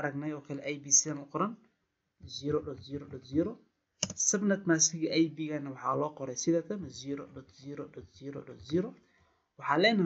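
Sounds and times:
man lecturing: 0.0 - 10.0
computer keyboard typing: 4.0 - 4.2.

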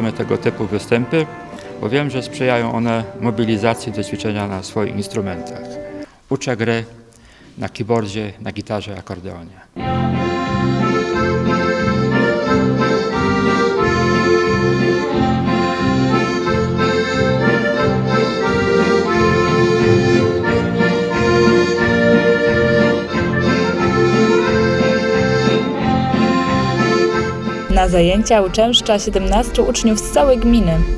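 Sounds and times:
accordions playing held chords: 0.0 - 6.1, 9.8 - 30.9.

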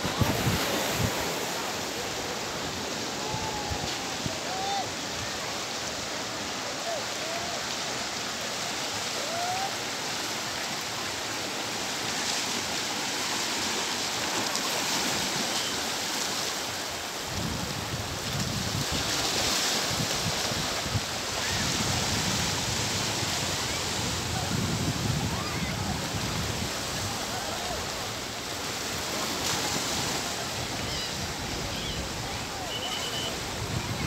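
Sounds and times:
small waves washing on beach: 0.0 - 34.0.

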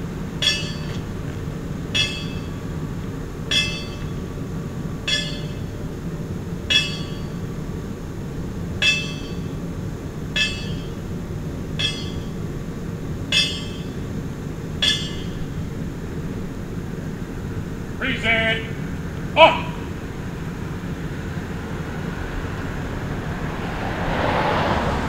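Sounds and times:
steady low rumble: 0.0 - 24.0
bell strokes: 11.8 - 12.4, 14.8 - 15.6.

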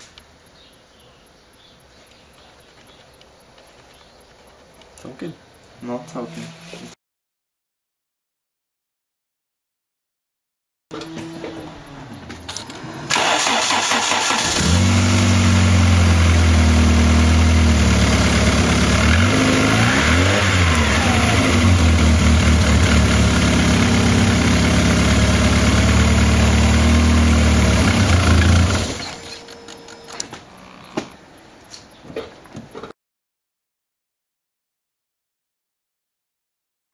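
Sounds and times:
car engine revving: 11.0 - 29.2
car engine starting and idling: 11.0 - 30.2.

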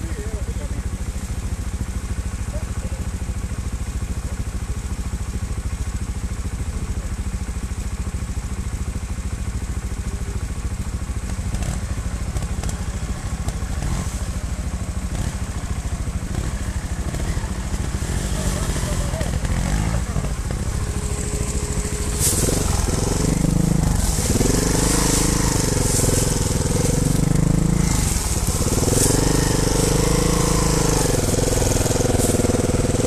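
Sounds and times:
motorcycle engine idling: 0.0 - 33.0.

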